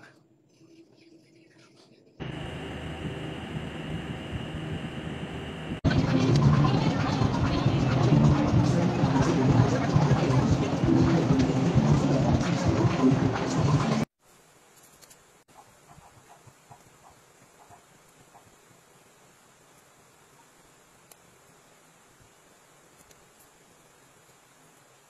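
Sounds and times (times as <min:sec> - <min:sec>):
thin high whine: 0:00.0 - 0:06.5
music: 0:05.9 - 0:14.0.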